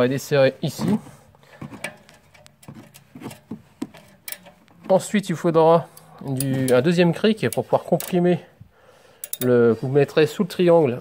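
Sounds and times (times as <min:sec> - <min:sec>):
socket and ratchet clicking: 0:01.8 - 0:04.8, 0:09.2 - 0:09.5.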